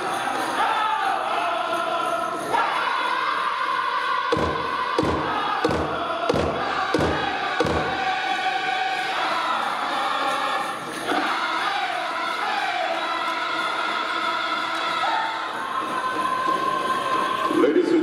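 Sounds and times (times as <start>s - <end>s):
group singing in unison: 0.0s - 18.0s
big drum beats: 4.3s - 8.4s.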